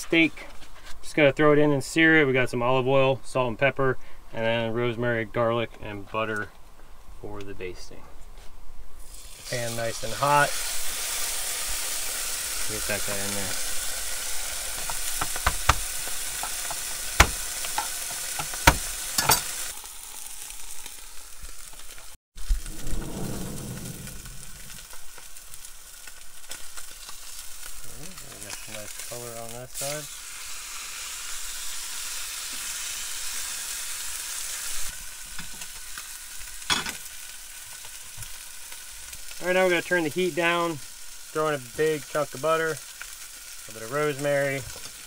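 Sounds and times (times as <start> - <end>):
steak sizzling in a pan: 9.0 - 45.0
oil popping: 14.7 - 19.4.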